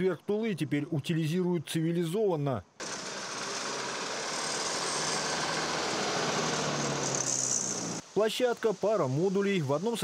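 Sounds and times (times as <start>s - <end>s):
truck diesel engine driving past: 2.8s - 8.0s.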